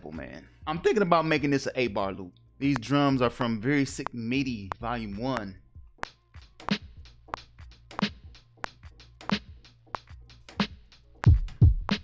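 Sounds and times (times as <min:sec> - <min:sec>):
boom bap drum pattern: 0:00.0 - 0:12.0
hi-hat and percussion hits: 0:02.6 - 0:12.0.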